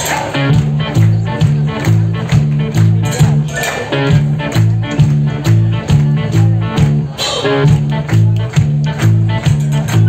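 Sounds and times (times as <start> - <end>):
acoustic and electric guitars: 0.0 - 10.0
drums playing steady beat: 0.0 - 10.0
repeating bass line: 0.0 - 10.0.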